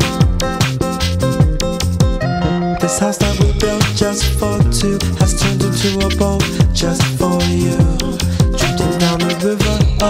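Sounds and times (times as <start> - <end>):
deep kick drums: 0.0 - 2.2, 3.2 - 8.8, 9.7 - 10.0
sustained bass and chords: 0.0 - 10.0.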